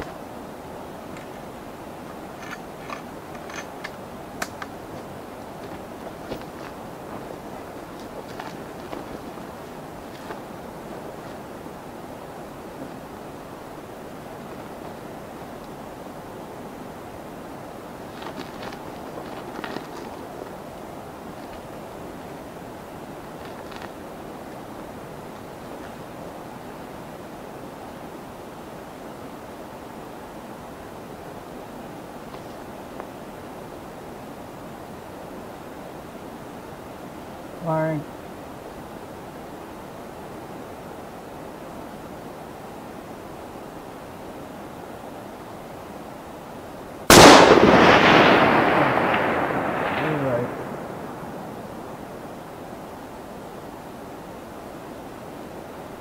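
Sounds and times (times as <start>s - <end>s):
rifle shot: 47.1s - 51.0s.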